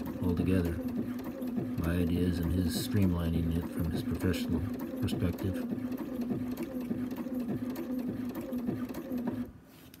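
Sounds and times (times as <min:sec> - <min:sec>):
sewing machine running: 0:00.0 - 0:09.5.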